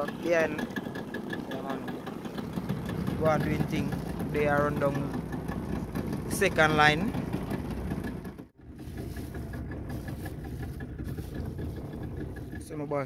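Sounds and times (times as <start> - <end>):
outboard motor idling: 0.0 - 13.0.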